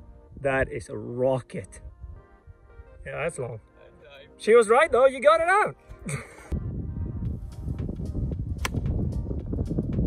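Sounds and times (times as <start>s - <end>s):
background music: 0.0s - 10.0s
wind rumbling on microphone: 6.1s - 10.0s
golf club striking ball: 8.6s - 8.9s.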